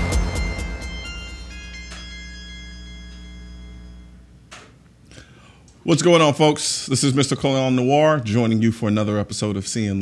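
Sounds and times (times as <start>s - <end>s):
electronic held chord with chimes: 0.0s - 4.5s.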